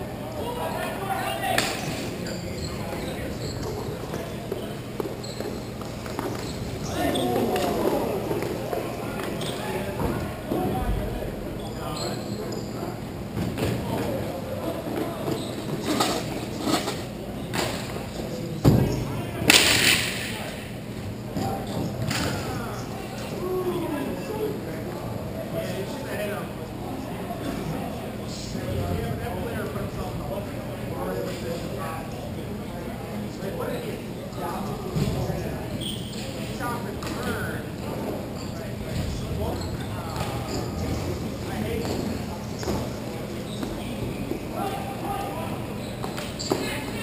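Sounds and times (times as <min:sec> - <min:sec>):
players calling out: 0:00.3 - 0:11.0.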